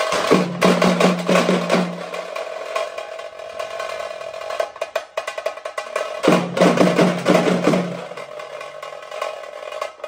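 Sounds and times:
band drums playing: 0:00.0 - 0:09.8.

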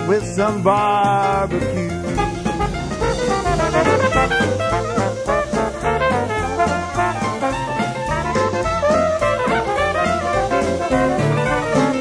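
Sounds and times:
jazz band playing: 0:00.0 - 0:12.0.

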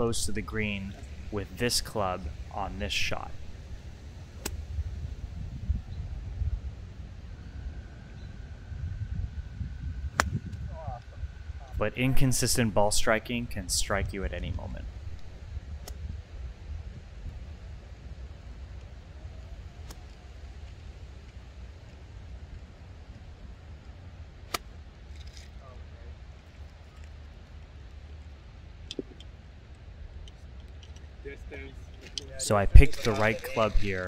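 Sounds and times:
wind rumble on microphone: 0:03.2 - 0:20.9
golf club striking ball: 0:04.4 - 0:04.7, 0:10.1 - 0:10.4.

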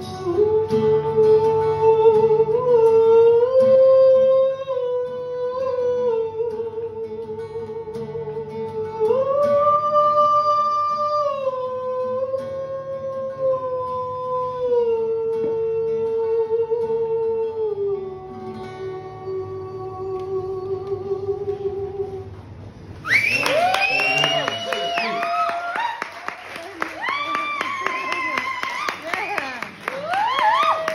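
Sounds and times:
audience clapping: 0:23.0 - 0:30.9
person whooping: 0:23.0 - 0:30.9
people talking: 0:23.4 - 0:25.4, 0:26.6 - 0:29.8.

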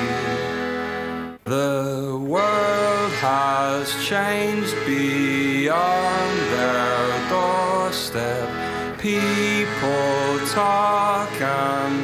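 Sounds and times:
accordion: 0:00.0 - 0:12.0.

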